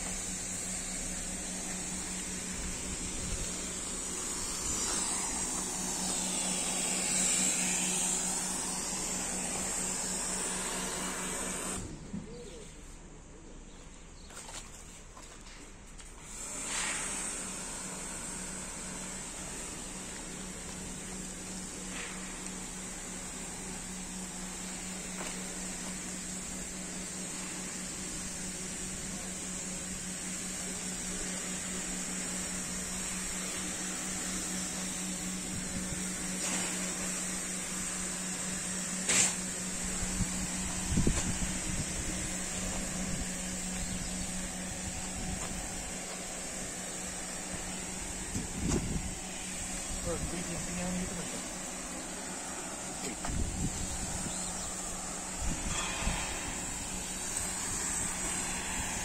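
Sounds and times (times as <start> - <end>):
pressure washer motor humming: 0.0 - 11.9, 16.2 - 59.0
water spray hissing: 0.0 - 11.9, 16.2 - 59.0.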